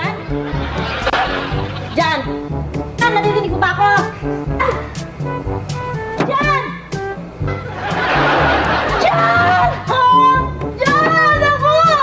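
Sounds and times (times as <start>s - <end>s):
sitcom background music: 0.0s - 12.0s.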